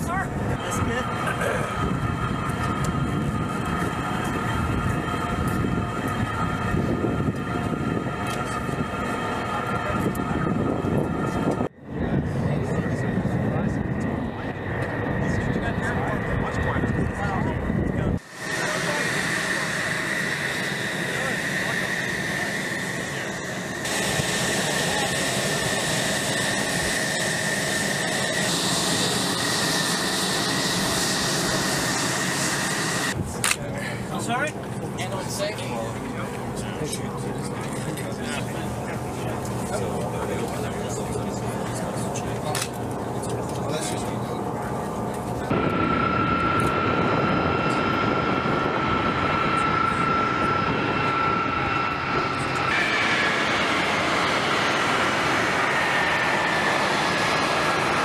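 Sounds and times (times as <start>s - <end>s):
jet engine whine and hiss: 0.0s - 58.0s.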